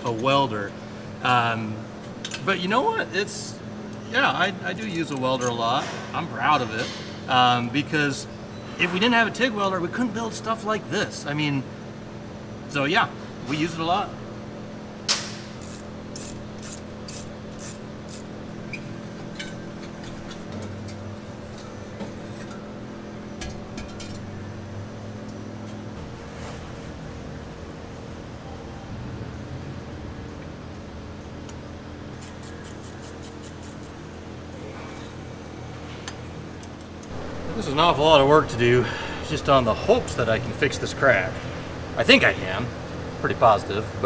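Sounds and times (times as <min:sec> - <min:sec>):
steady background hum: 0:00.0 - 0:44.0.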